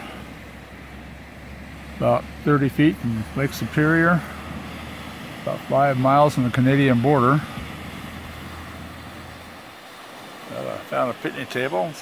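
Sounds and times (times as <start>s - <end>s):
constant low hum: 0.0s - 10.9s.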